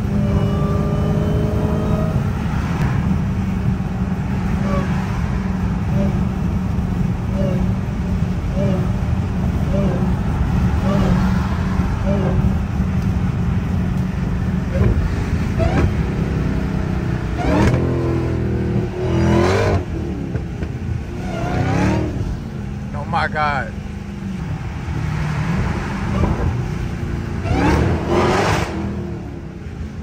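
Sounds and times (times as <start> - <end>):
car engine droning in cabin: 0.0 - 30.0.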